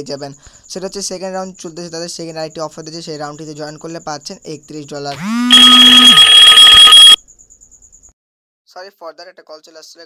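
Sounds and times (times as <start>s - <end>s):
harsh electronic alarm blare: 5.2s - 7.2s.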